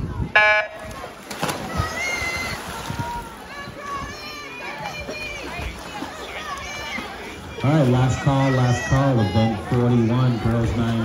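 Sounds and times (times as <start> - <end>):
swimmers diving into water: 0.0 - 11.0.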